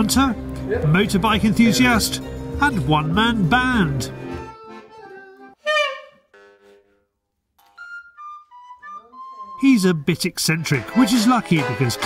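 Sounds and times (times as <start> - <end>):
wooden flute notes: 4.6 - 7.0, 7.7 - 9.6.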